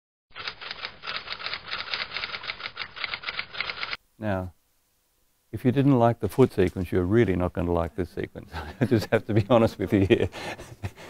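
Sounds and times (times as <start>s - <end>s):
rapid sharp clicks: 0.4s - 4.0s.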